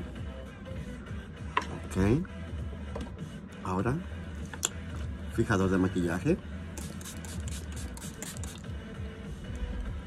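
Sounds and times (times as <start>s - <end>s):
spray bottle spritzes: 6.8s - 8.7s.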